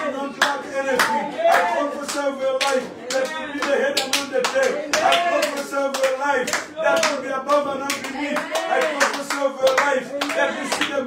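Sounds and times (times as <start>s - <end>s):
people clapping in rhythm: 0.0s - 11.0s.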